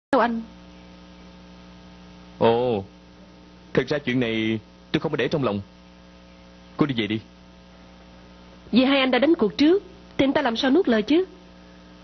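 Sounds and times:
electrical mains hum: 0.1s - 12.0s.

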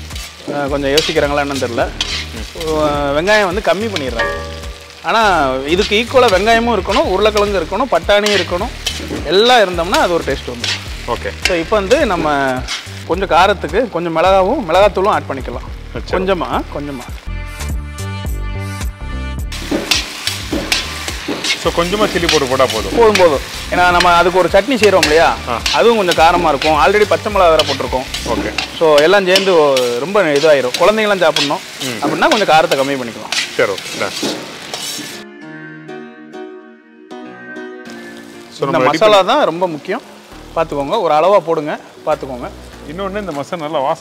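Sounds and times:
ladle stirring in pan: 0.0s - 2.8s, 8.2s - 9.3s, 10.0s - 11.6s, 19.5s - 35.2s
filling sizzling in hot oil: 0.0s - 35.2s, 37.9s - 44.0s
background music with a beat: 4.0s - 5.3s, 17.1s - 28.8s, 35.1s - 38.5s.

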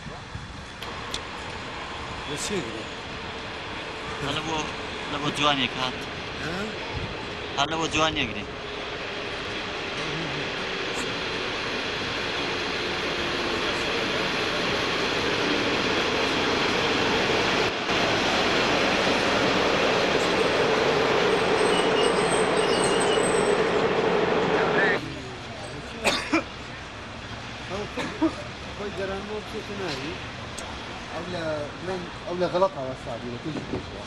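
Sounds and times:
steady tone from locomotive: 0.0s - 34.0s
train approaching: 0.3s - 25.9s.

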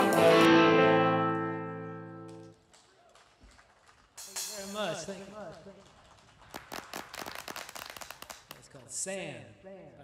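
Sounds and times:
scattered hand clapping: 5.4s - 9.0s.

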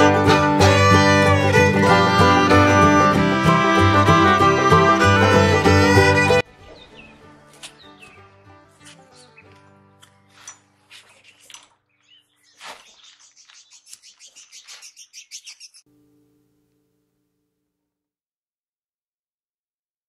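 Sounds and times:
loud music: 0.0s - 6.5s
faint bird chirps: 12.0s - 15.8s.

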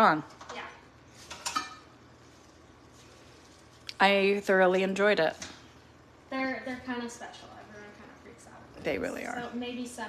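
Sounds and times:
utensil clinking against dish: 1.3s - 1.9s.

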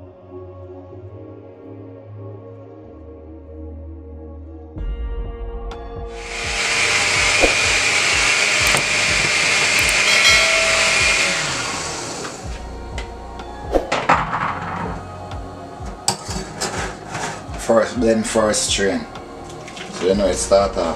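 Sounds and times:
loud steady hiss: 6.2s - 12.4s.

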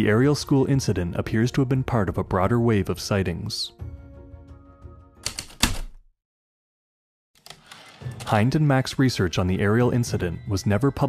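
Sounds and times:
typewriter keystroke clacks: 5.2s - 6.0s.

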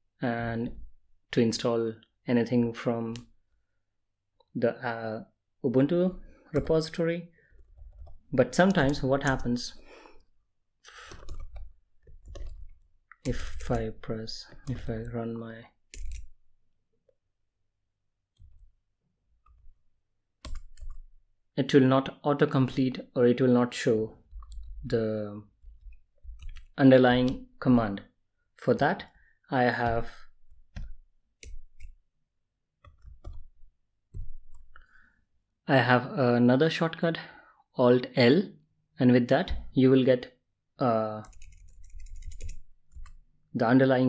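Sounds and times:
typing on computer keyboard: 7.6s - 9.4s, 11.0s - 13.9s, 15.9s - 16.4s, 20.4s - 21.1s, 25.7s - 27.4s, 41.2s - 43.2s.

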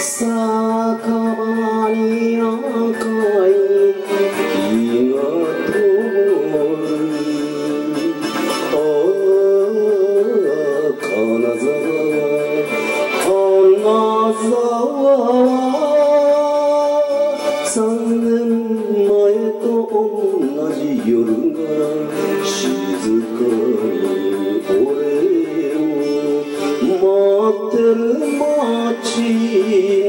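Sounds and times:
man singing with vibrato: 0.0s - 30.0s
orchestral backing: 0.0s - 30.0s.

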